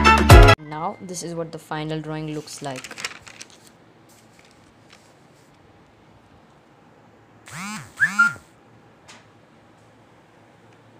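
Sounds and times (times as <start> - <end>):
short voice-like calls: 7.5 - 8.5.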